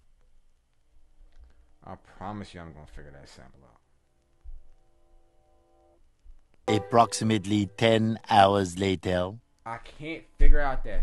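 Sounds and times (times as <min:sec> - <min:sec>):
man talking: 0:06.7 - 0:11.0.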